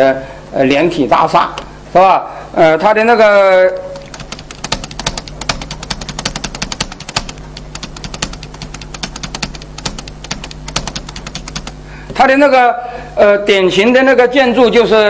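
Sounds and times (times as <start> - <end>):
low electrical hum: 0.0 - 15.0
laptop keyboard keys clicking: 3.7 - 11.8.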